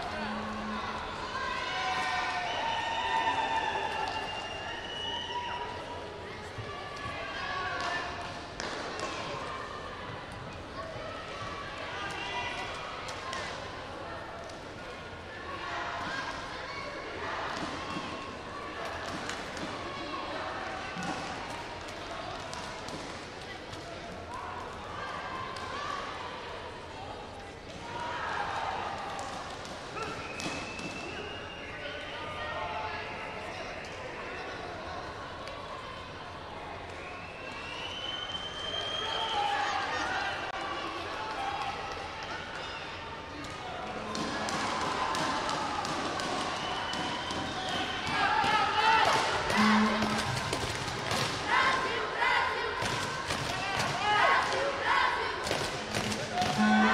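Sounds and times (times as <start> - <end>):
thin high-pitched tone: 0.0 - 1.2, 49.5 - 50.4, 56.4 - 56.9
indistinct voices calling out: 0.0 - 2.0, 49.0 - 50.8, 55.3 - 56.9
sports hall background noise: 0.0 - 56.9.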